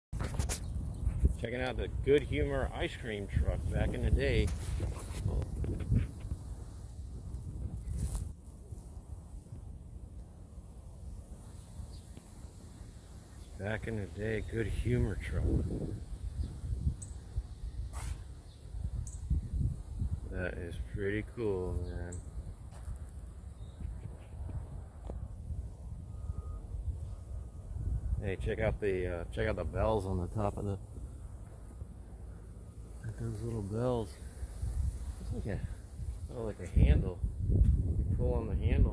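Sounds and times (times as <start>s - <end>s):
wind on microphone: 0.2s - 8.4s, 14.4s - 21.0s, 34.3s - 38.9s
steady low rumble: 0.6s - 11.6s
faint high hiss: 1.3s - 25.0s, 26.0s - 37.4s.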